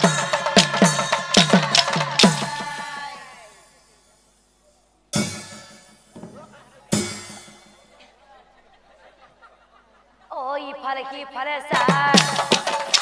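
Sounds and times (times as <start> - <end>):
drum strikes ringing: 0.0 - 4.5, 5.1 - 8.0, 11.8 - 13.0
drum and cymbals: 0.0 - 8.0, 11.7 - 13.0.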